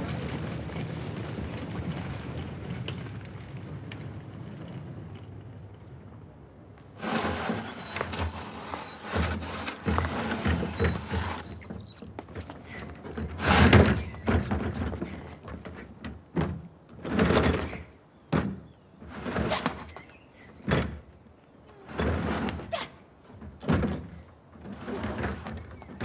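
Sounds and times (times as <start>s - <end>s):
wheelie bin rolling over paving: 0.0s - 21.2s, 21.8s - 26.0s
footsteps: 6.9s - 15.8s.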